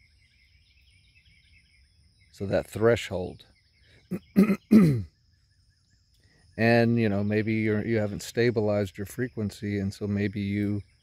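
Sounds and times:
man clearing his throat: 4.1s - 5.1s.

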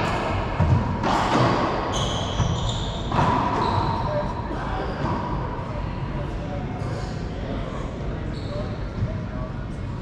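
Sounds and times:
racquet hitting ball: 0.0s - 3.8s
sneaker squeaks: 0.6s - 5.4s, 8.3s - 9.2s.

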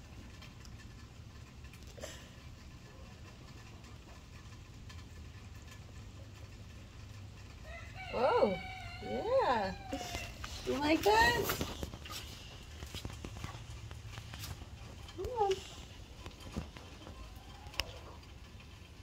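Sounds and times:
low background noise: 0.0s - 19.0s.

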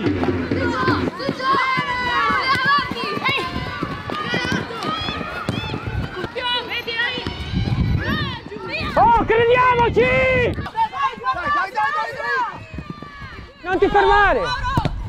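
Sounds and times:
players running on grass: 0.0s - 15.0s
players shouting calls: 0.2s - 15.0s.

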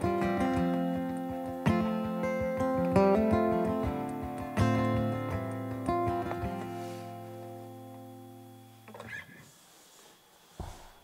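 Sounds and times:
acoustic guitar chord ringing: 0.0s - 9.3s.

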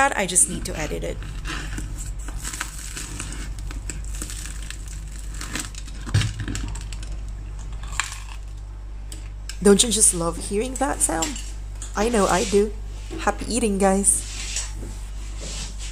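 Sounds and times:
bread crust crackling: 0.9s - 9.5s.

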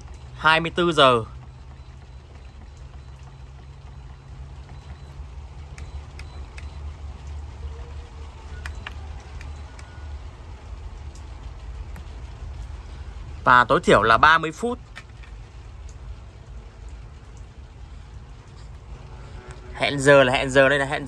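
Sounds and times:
steady low rumble: 0.0s - 21.0s.

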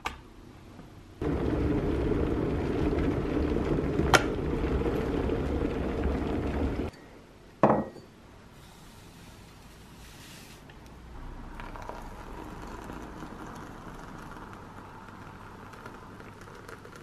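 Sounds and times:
kettle water heating rumble: 1.2s - 6.9s, 11.5s - 17.0s
mug knocking on stone counter: 7.6s - 8.1s.

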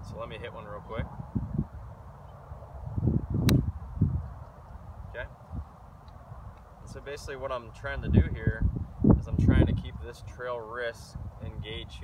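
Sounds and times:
golf club hitting ball: 3.4s - 3.7s.

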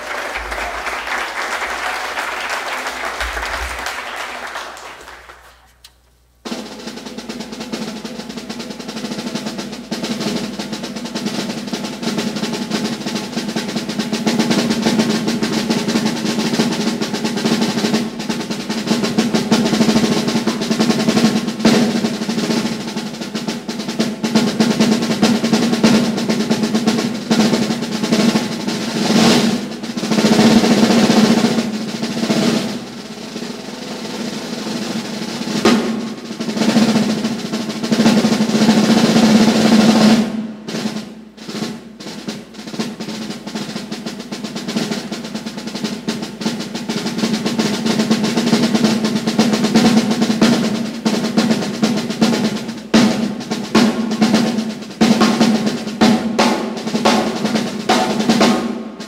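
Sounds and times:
drum roll with sticks: 0.0s - 59.0s.

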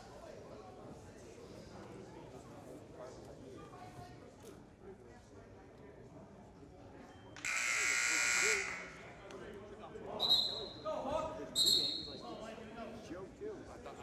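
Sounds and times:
murmur of voices: 0.0s - 14.0s
referee's whistle blasts: 7.4s - 9.0s, 10.2s - 10.9s, 11.6s - 12.2s
scoreboard buzzer: 7.4s - 9.0s.

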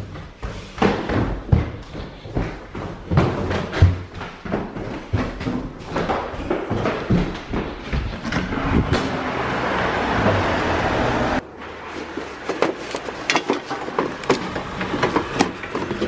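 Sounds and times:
footsteps: 0.0s - 9.6s, 11.4s - 16.0s
footsteps on wooden porch: 0.0s - 10.4s, 11.7s - 16.0s
street traffic noise: 7.8s - 16.0s.

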